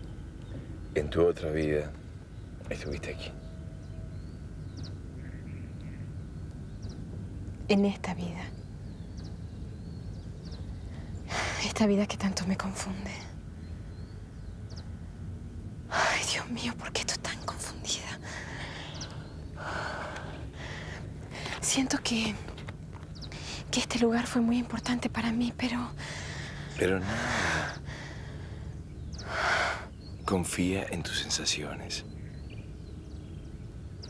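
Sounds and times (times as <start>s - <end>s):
low outdoor rumble: 0.0s - 34.0s
woman breathing in distress: 18.2s - 21.5s, 26.0s - 29.9s.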